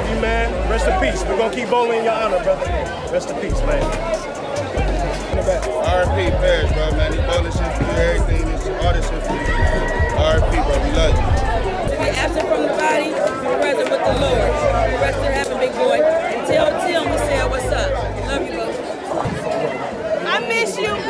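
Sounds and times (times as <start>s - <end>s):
background music with deep bass: 0.0s - 18.7s
crowd chatter in a hall: 0.0s - 21.0s.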